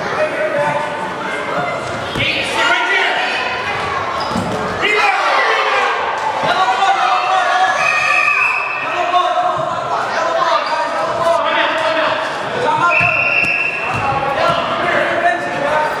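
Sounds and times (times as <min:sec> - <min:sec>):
echoing shouts and chatter: 0:00.0 - 0:16.0.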